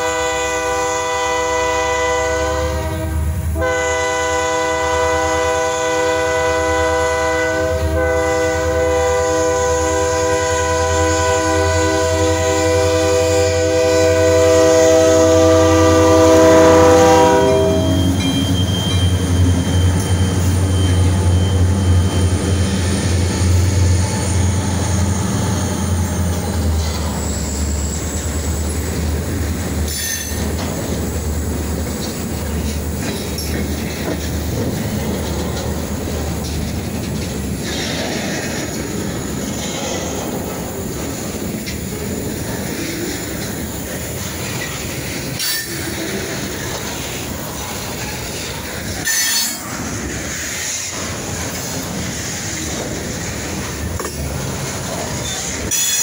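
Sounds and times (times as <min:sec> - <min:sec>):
locomotive chord horn: 0:00.0 - 0:18.6
high wheel squeal: 0:15.3 - 0:29.3, 0:29.9 - 0:30.5.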